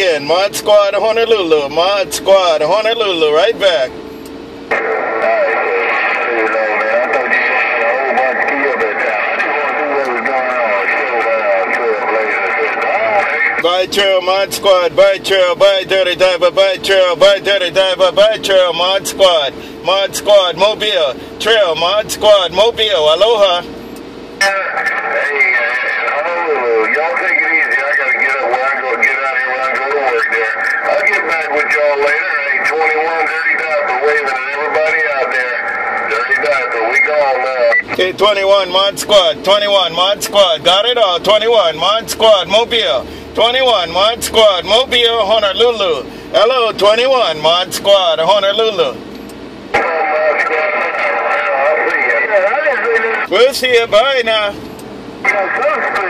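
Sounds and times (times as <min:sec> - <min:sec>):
noisy radio voice: 0:00.0 - 0:04.0, 0:04.7 - 0:23.8, 0:24.4 - 0:49.0, 0:49.7 - 0:56.0.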